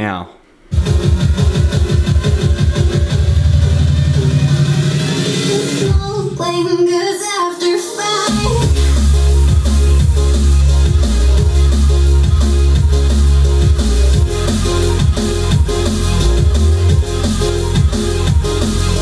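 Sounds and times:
electronic dance music with deep bass: 0.7s - 6.8s, 7.6s - 19.0s.

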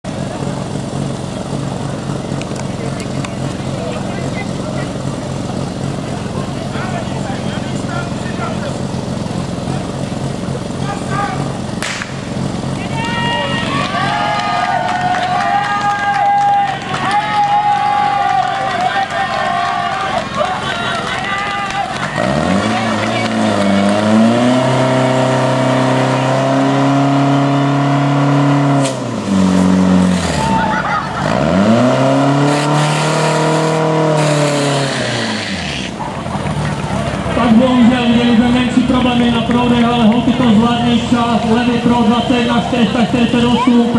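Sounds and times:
pump engine running hard: 0.1s - 28.6s
people shouting: 12.8s - 23.9s, 30.3s - 31.2s.

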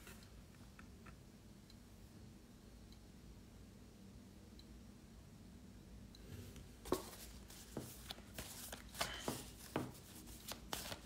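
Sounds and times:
cards shuffled by hand: 6.9s - 11.0s.

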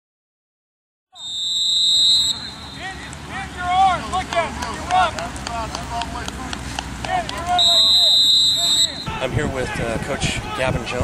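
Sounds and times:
shrill whistle blast: 1.2s - 3.0s, 7.6s - 9.1s
voices calling out: 1.2s - 11.0s.

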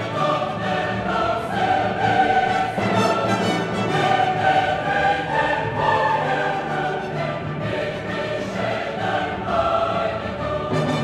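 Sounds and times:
choir singing with orchestra: 0.0s - 11.0s.

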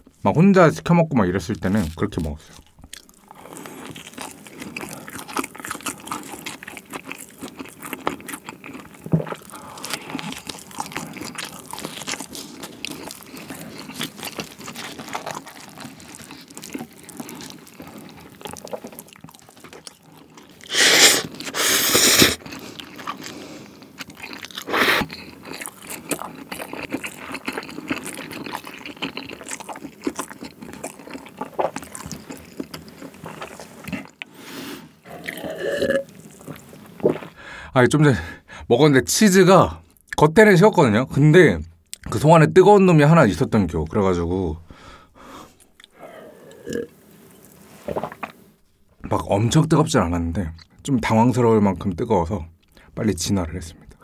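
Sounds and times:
close chewing and crunching: 1.2s - 37.4s, 41.8s - 42.2s, 45.4s - 48.8s, 51.7s - 53.0s
breathy huffs: 37.4s - 38.7s, 44.6s - 46.7s.

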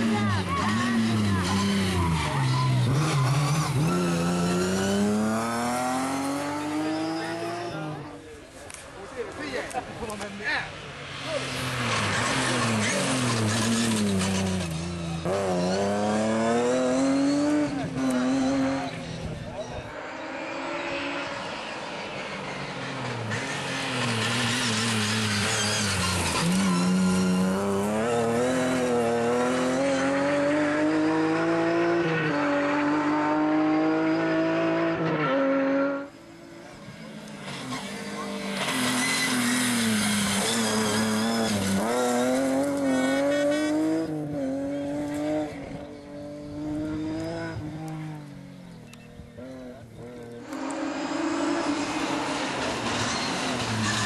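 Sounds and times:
rally car engine revving: 0.0s - 8.2s, 11.1s - 54.0s.

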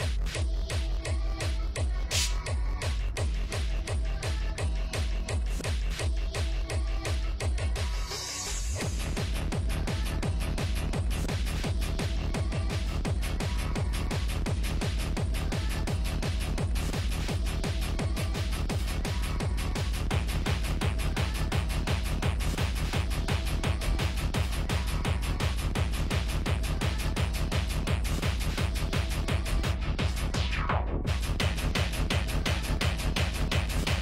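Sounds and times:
hard techno with kick drum: 0.0s - 34.0s.

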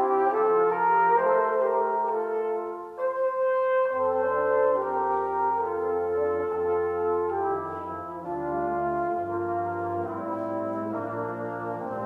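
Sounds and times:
brass quintet playing held chords: 0.0s - 12.0s
low tuba note: 0.0s - 12.0s.

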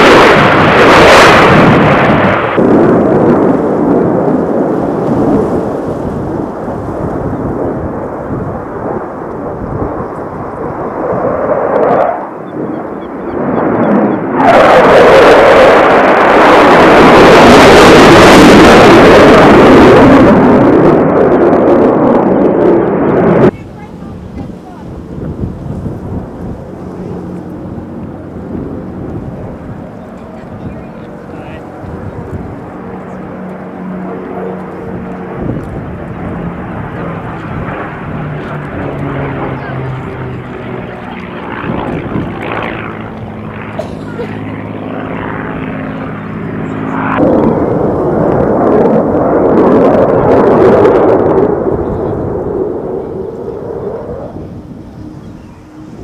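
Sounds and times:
jet roar passing: 0.0s - 56.0s
propeller plane engine droning: 0.0s - 56.0s.

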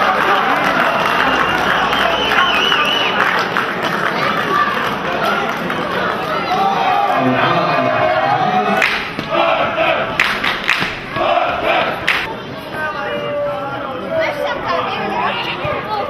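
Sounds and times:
supporters cheering and chanting: 0.0s - 16.0s
sharp hand claps: 8.8s - 9.3s, 10.2s - 11.1s, 12.0s - 12.3s.

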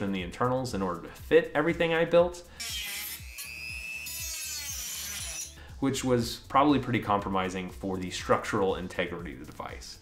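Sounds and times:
rotary tool whining: 2.6s - 5.6s.

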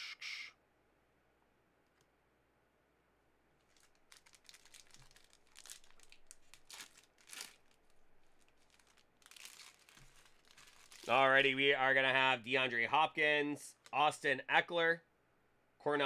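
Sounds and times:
foil wrapper tearing and crinkling: 3.6s - 11.2s.

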